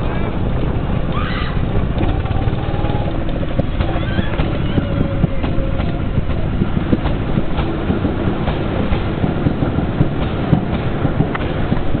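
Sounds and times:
go-kart engine rumble: 0:00.0 - 0:08.2.

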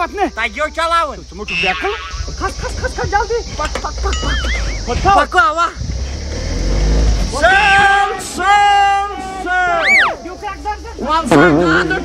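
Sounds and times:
truck engine revving: 0:05.8 - 0:12.0.

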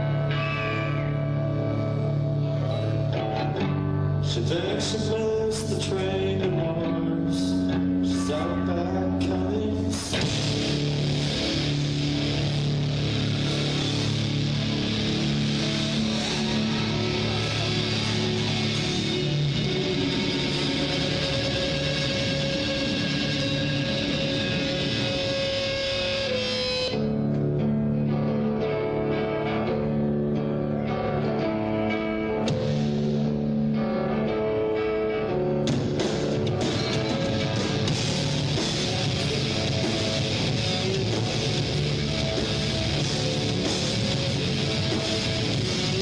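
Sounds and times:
guitar riff: 0:00.0 - 0:46.0
rock band playing: 0:00.0 - 0:46.0.

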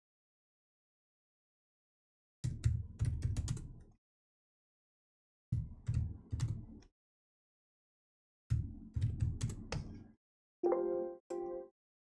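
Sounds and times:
computer keyboard typing: 0:02.6 - 0:03.7.

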